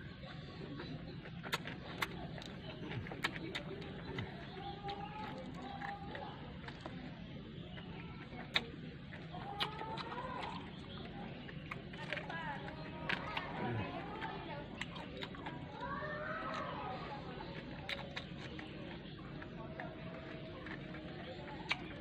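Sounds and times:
person chewing food: 0.0 - 22.0.

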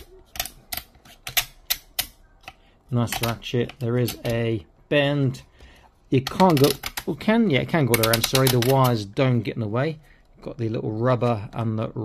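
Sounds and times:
plastic joint clicking: 0.0 - 4.4, 6.2 - 7.2, 7.8 - 9.0.

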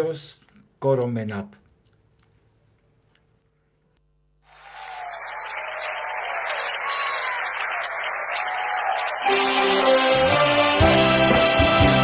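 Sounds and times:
audience applause: 4.5 - 12.0.

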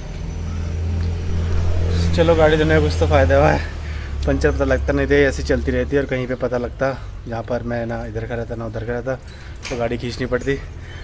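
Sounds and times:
low rumble: 0.4 - 4.2.

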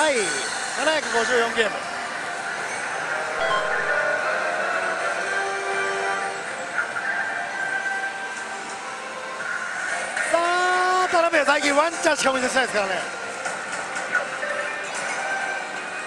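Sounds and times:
gaming hall din: 3.4 - 5.0
electronic music held notes: 3.4 - 5.5.

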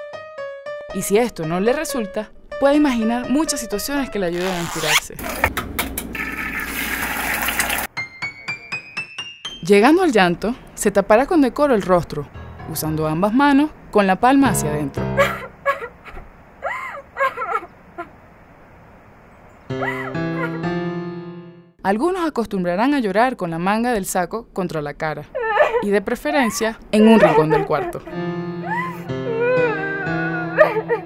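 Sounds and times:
tap water running into pan: 6.2 - 7.9
sustained music notes: 14.4 - 15.7, 19.7 - 21.7, 28.0 - 31.0
high whimper: 15.1 - 17.7, 19.7 - 20.6, 25.3 - 31.0.

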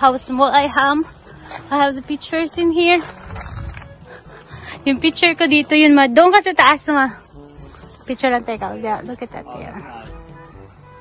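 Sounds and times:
woman talking: 0.0 - 1.1, 1.7 - 3.1, 4.8 - 7.2, 8.1 - 9.8.

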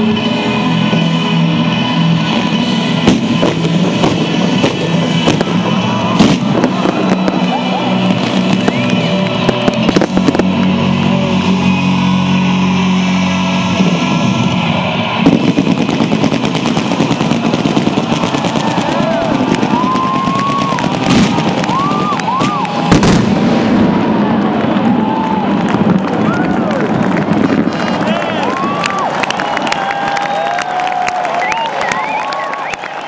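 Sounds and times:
background music: 0.0 - 24.4
fireworks reports and crackle: 0.0 - 33.0.

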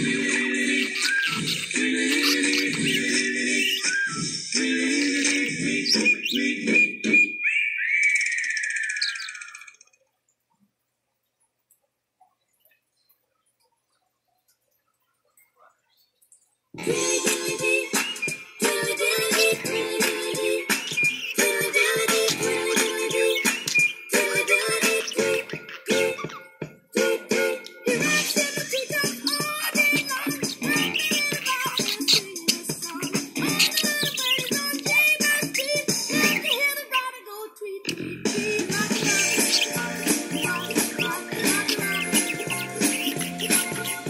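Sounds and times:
music: 0.0 - 7.0, 16.8 - 36.5, 37.9 - 44.0
budgerigar chattering: 0.6 - 3.9, 20.7 - 26.4, 28.0 - 36.8, 37.9 - 44.0
music with repeating rhythmic riff: 32.3 - 36.4, 38.0 - 44.0.

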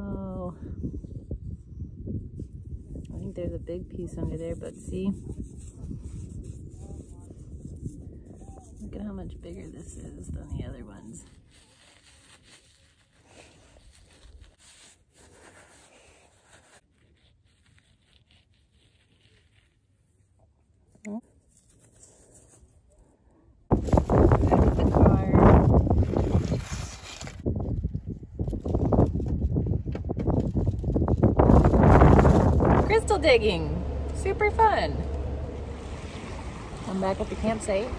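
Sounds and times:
wind buffeting microphone: 0.0 - 11.2, 23.7 - 37.9.

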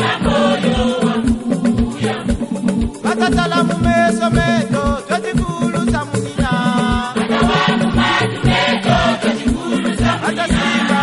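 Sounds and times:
choir singing gospel song: 0.0 - 11.0
steady low drum beat: 0.0 - 11.0.

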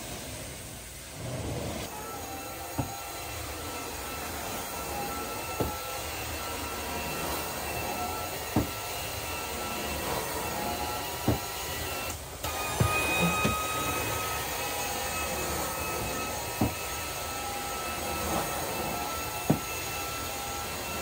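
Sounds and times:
carpet vacuum running with whine: 0.0 - 21.0
wand sucking across carpet: 2.8 - 12.2.

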